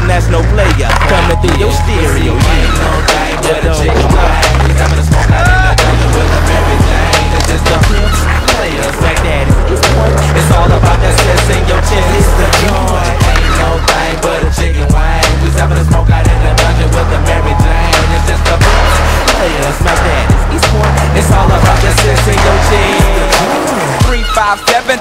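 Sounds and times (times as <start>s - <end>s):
hip-hop music with heavy bass: 0.0s - 25.0s
skateboard wheels rolling on concrete: 0.1s - 25.0s
skateboards popping and landing: 0.2s - 14.4s.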